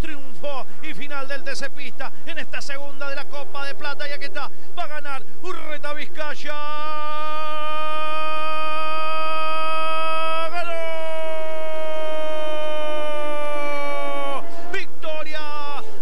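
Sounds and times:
man speaking choppily: 0:00.0 - 0:11.0, 0:14.6 - 0:15.9
man's long sustained shout: 0:06.6 - 0:16.0.

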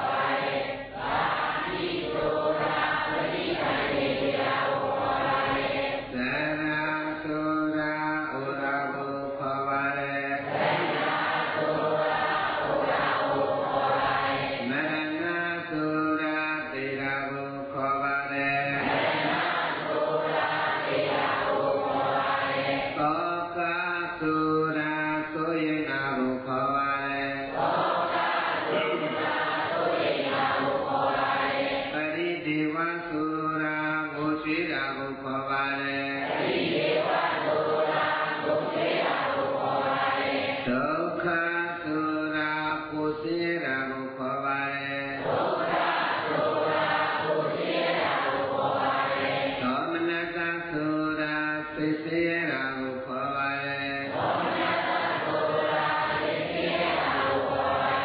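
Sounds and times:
melodic chanting: 0:00.0 - 0:58.0.

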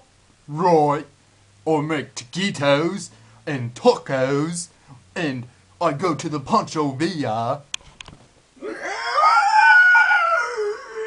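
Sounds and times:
man howling: 0:08.6 - 0:11.0.

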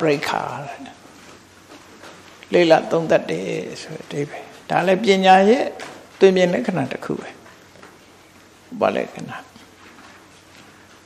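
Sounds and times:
man speaking: 0:00.0 - 0:01.0, 0:02.5 - 0:07.4, 0:08.7 - 0:09.6.

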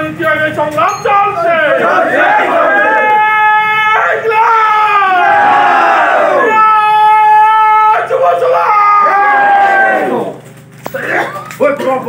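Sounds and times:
men shouting slogan together: 0:01.2 - 0:10.4.

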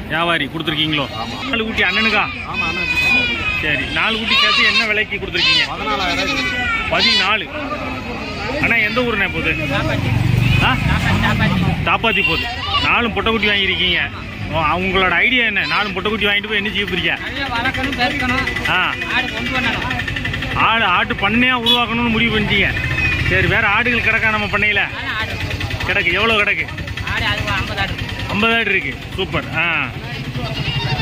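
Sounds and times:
people talking: 0:00.0 - 0:31.0
vehicle engine noise: 0:00.0 - 0:31.0.

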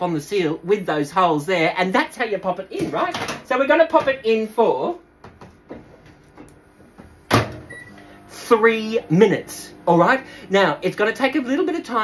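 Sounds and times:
microwave door shutting: 0:07.2 - 0:08.0.

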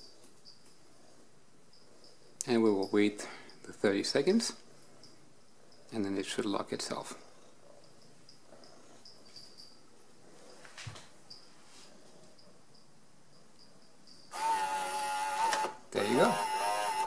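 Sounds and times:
lock motor running: 0:14.3 - 0:17.0.

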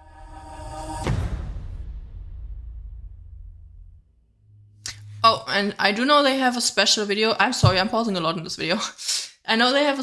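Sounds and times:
song bass: 0:04.5 - 0:05.7.

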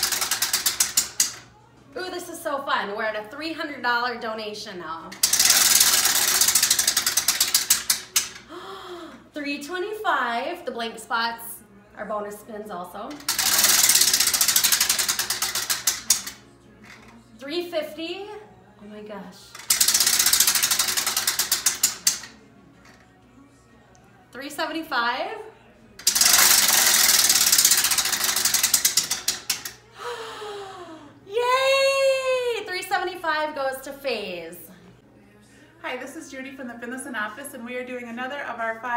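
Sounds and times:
prize wheel clicker ticking: 0:00.0 - 0:01.4, 0:05.1 - 0:08.4, 0:13.1 - 0:16.4, 0:19.6 - 0:22.3, 0:26.0 - 0:29.8.

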